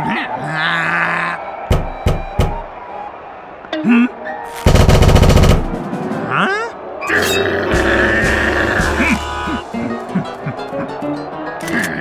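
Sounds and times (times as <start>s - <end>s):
music: 1.4s - 12.0s
fists pounding on wooden door: 1.7s - 2.7s.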